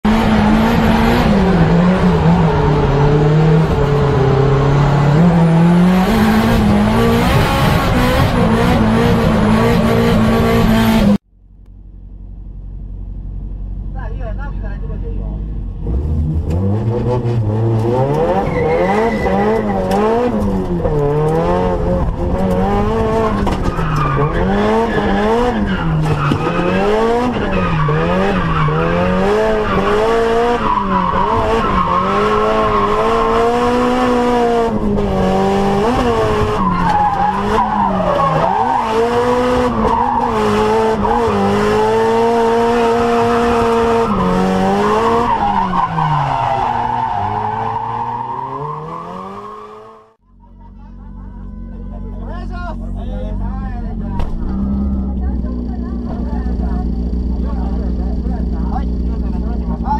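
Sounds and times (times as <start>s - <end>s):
car engine revving: 0.0s - 11.2s, 15.3s - 50.2s, 51.3s - 59.9s
tyres skidding: 15.4s - 50.2s.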